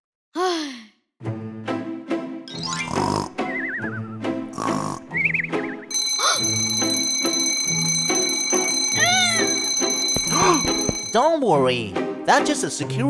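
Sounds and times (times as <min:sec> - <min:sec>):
light background music: 0:01.2 - 0:13.0
cartoon snoring: 0:02.6 - 0:03.4, 0:04.5 - 0:05.2.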